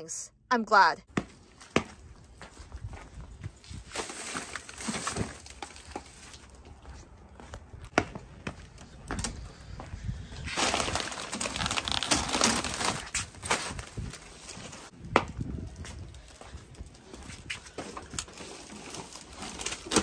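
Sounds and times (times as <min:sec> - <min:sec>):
plastic bags rustling: 0:03.7 - 0:06.6, 0:10.5 - 0:14.9, 0:16.3 - 0:20.0.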